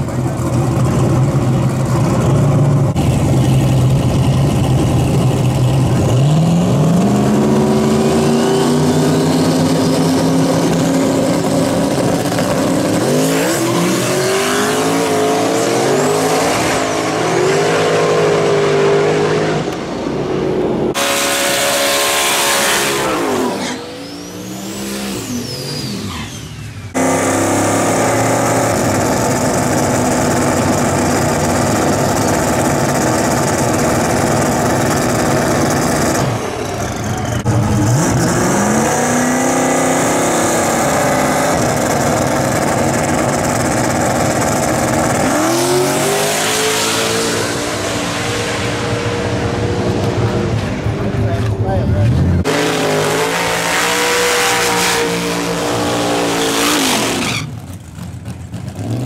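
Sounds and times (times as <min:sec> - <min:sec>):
drag car engine revving: 0:00.0 - 0:59.0.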